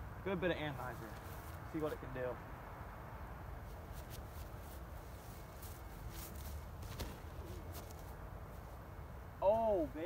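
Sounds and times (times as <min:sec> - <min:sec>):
footsteps on grass: 0:00.8 - 0:02.2, 0:03.6 - 0:08.8
soft thuds: 0:05.5 - 0:08.2.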